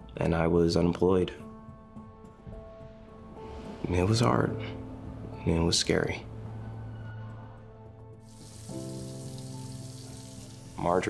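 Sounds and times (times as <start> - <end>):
soft background music chords: 0.0 - 11.0
water running into a sink: 8.3 - 11.0.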